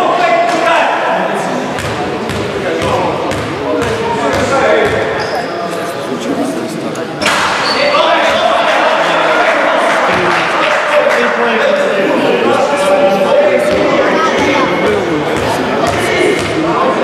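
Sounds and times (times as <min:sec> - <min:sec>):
echoing voices in sports hall: 0:00.0 - 0:17.0
basketball bouncing on court: 0:01.7 - 0:05.2, 0:15.2 - 0:16.6.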